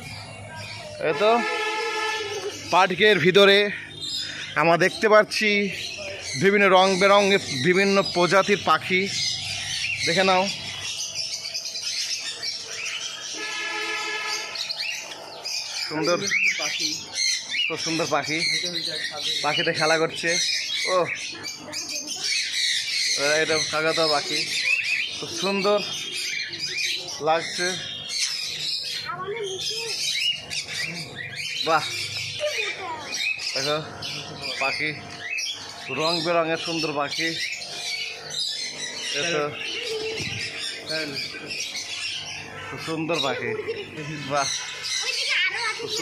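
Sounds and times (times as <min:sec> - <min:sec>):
caged birds chirping: 0:00.0 - 0:46.0
parrots squawking shrilly: 0:00.0 - 0:46.0.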